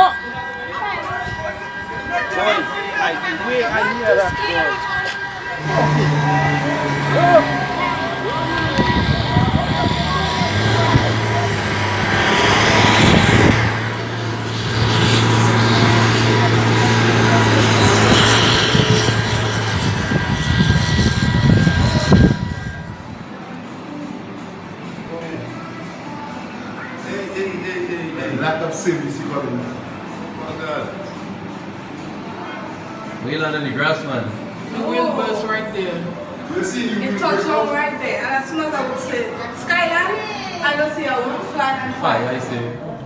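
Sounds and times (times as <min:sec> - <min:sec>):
high whining tones: 0:00.0 - 0:23.4
engines droning: 0:00.0 - 0:34.8
voices in background: 0:00.0 - 0:43.0.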